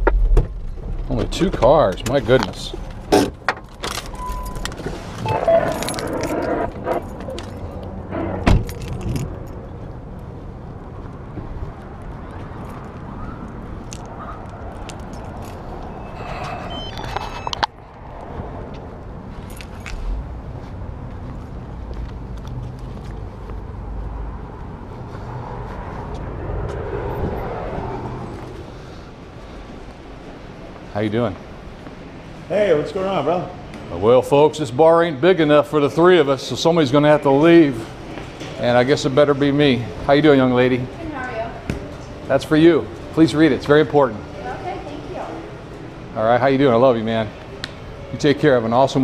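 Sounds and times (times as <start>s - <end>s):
low traffic rumble: 0.0s - 49.0s
car keys jangling: 3.6s - 4.9s, 5.5s - 7.9s, 8.5s - 9.6s, 13.8s - 17.6s, 19.4s - 20.1s
short electronic beep: 4.2s - 4.6s, 15.9s - 17.6s
vehicle passing: 4.7s - 49.0s.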